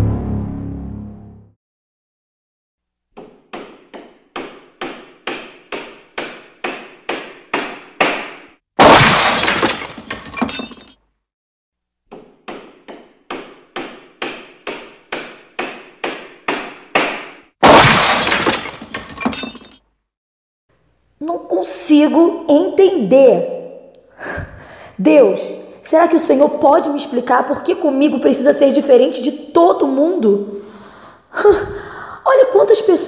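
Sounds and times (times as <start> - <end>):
sharp knocks: 3.2 - 8.5, 12.1 - 17.4
glass breaking crash: 8.8 - 11.0, 17.6 - 19.8.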